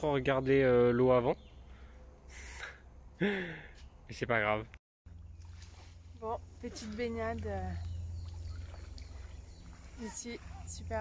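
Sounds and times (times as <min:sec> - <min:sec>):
small water splashes: 0:05.1 - 0:11.0
steady low rumble: 0:05.1 - 0:11.0
water lapping in swimming pool: 0:05.4 - 0:11.0.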